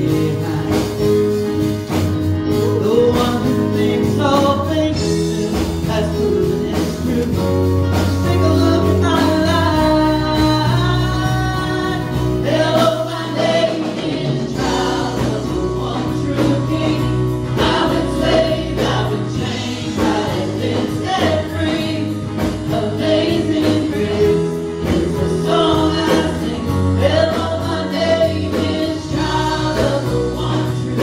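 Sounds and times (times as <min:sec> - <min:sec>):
gospel band with singers: 0:00.0 - 0:31.0.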